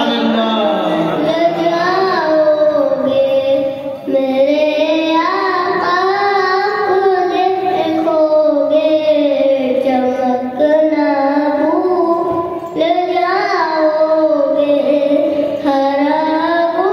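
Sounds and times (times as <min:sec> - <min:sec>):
boy singing devotional poem: 0:00.0 - 0:16.9.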